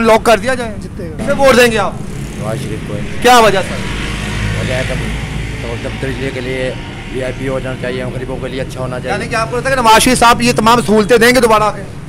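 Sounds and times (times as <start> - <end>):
man speaking: 0.0 - 4.0, 4.6 - 12.0
passing motor vehicle rumble: 0.0 - 12.0.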